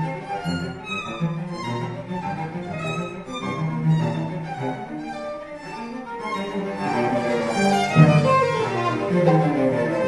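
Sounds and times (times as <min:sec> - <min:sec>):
bowed cello: 0:00.0 - 0:10.0
bowed violin: 0:00.0 - 0:10.0.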